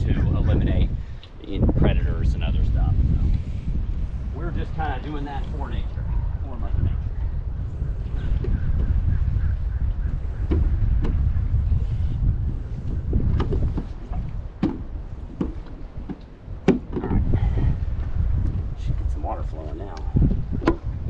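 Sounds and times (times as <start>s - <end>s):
wind buffeting microphone: 0.0s - 21.0s
sharp knocks: 13.3s - 17.1s.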